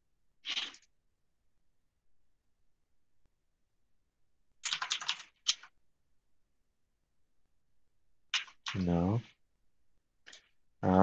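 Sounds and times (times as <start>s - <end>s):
computer keyboard typing: 4.6s - 5.7s.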